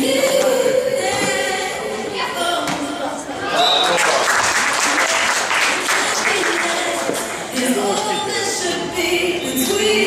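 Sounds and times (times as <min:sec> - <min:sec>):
spectators clapping: 0:03.8 - 0:08.1
voices: 0:05.8 - 0:10.0.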